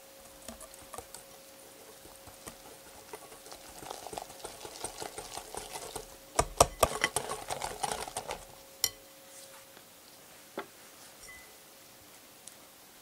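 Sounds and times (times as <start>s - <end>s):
whisk clicking against glass bowl: 0.2s - 9.0s.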